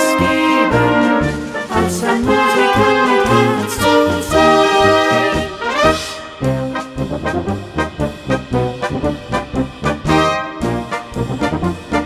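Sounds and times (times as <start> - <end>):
low bass notes: 0.0 - 12.0
wind band playing polka: 0.0 - 12.0.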